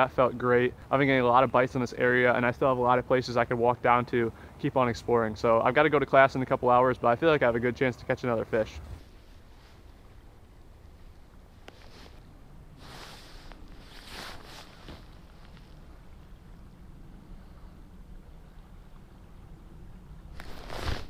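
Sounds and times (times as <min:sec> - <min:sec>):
river rumble: 0:00.0 - 0:21.0
hissing swishes: 0:11.8 - 0:15.7, 0:20.4 - 0:21.0.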